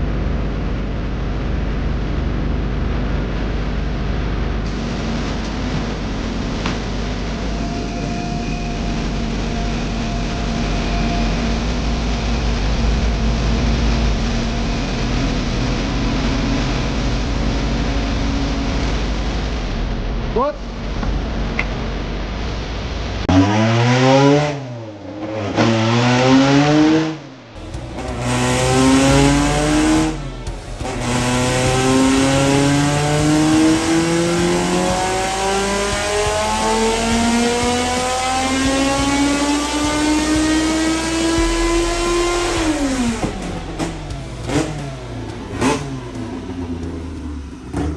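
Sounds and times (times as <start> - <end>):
race car engine revving: 0.0 - 47.9.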